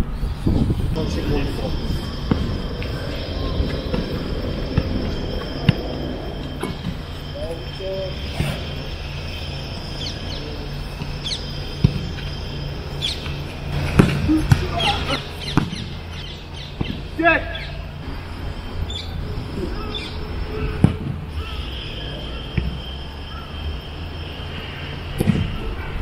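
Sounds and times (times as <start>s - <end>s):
birds chirping: 0.0s - 26.0s.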